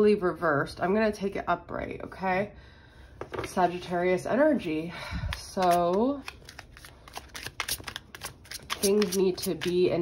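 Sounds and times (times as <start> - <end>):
woman speaking: 0.0 - 2.6, 3.4 - 6.3, 8.7 - 10.0
cards being shuffled: 5.3 - 10.0.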